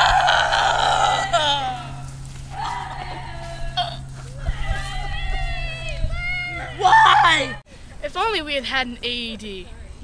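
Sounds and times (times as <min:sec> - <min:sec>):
boy screaming: 0:00.0 - 0:07.6.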